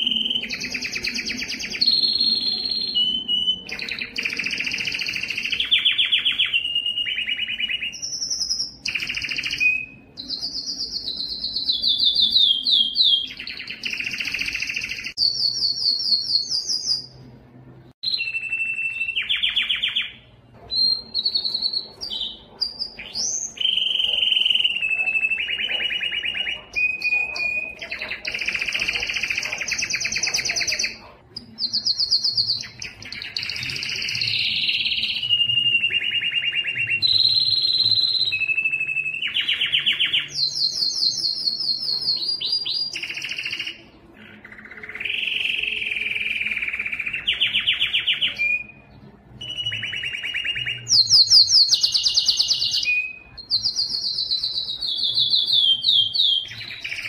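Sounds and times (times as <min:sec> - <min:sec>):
canary singing trills: 0:00.0 - 0:57.0.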